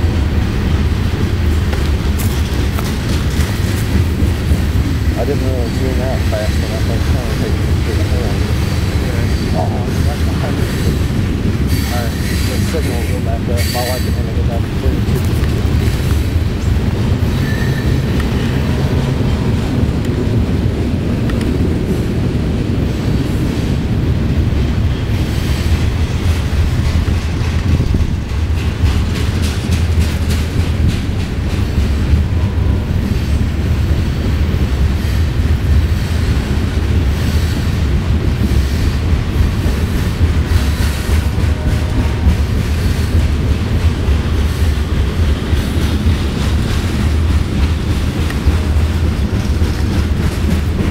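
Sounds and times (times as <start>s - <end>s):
freight train wheels rumbling on rails: 0.0s - 50.9s.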